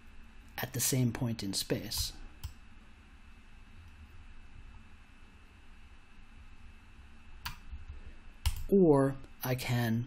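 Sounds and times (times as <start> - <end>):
computer mouse click: 1.9 - 2.6, 7.4 - 7.7, 8.4 - 8.7.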